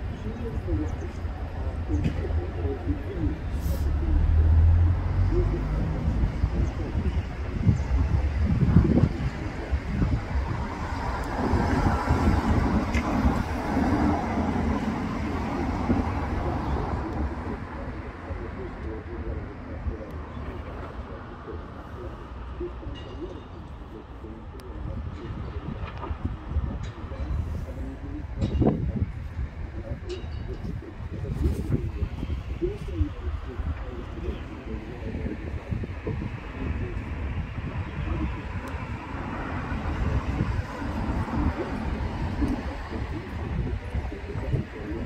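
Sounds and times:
indistinct voices: 0:00.0 - 0:45.0
traffic: 0:00.0 - 0:45.0.

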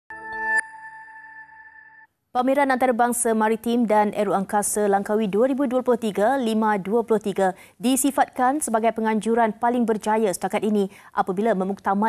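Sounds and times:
electronic chord: 0:00.1 - 0:02.1
ringing chime tone: 0:00.1 - 0:02.1.

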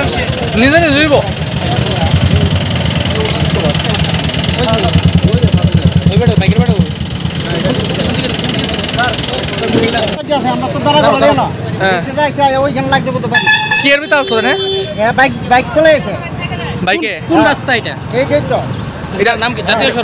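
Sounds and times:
vehicle engine idling: 0:00.0 - 0:11.0
crowd voices: 0:00.0 - 0:20.0
people talking: 0:00.0 - 0:20.0
vehicle horn: 0:13.3 - 0:15.1.

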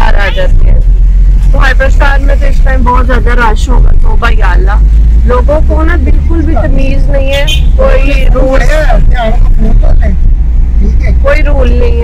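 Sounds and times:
car engine rumble: 0:00.0 - 0:12.0
road noise: 0:00.0 - 0:12.0.

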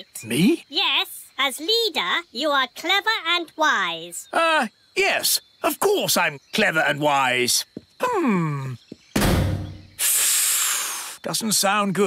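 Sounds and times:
steady hiss: 0:09.2 - 0:11.9.

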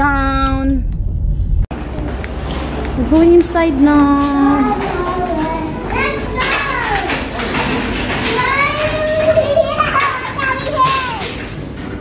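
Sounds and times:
young children calling out: 0:08.3 - 0:11.3.

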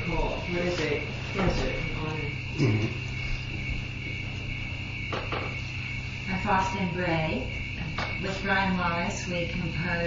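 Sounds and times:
high-pitched insect-like drone: 0:00.0 - 0:10.0
low hum: 0:00.0 - 0:10.0.

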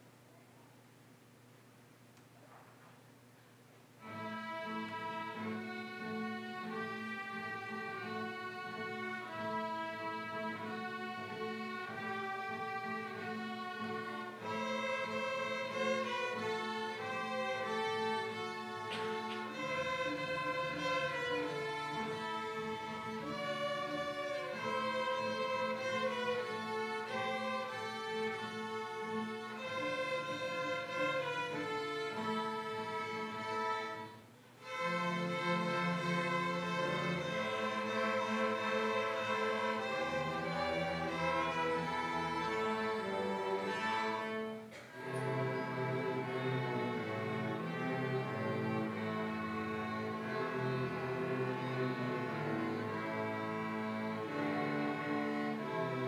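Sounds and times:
string orchestra playing: 0:04.0 - 0:56.0.

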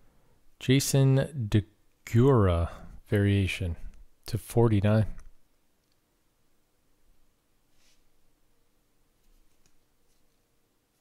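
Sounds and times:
man speaking: 0:00.6 - 0:05.3.

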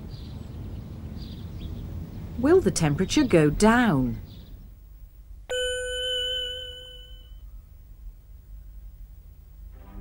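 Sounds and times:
bell-like ding: 0:05.5 - 0:07.4.

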